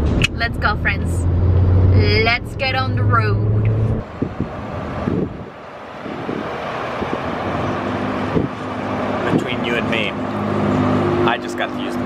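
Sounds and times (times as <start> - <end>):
rushing road traffic: 0.0 - 12.0.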